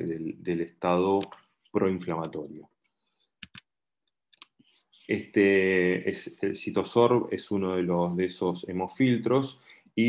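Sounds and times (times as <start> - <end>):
computer clicks: 3.4 - 3.7.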